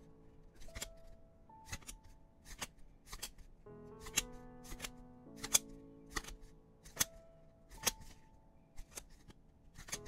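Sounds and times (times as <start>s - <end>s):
soft background music: 0.0s - 10.0s
cards snapping off a stack: 1.6s - 8.2s, 8.8s - 10.0s.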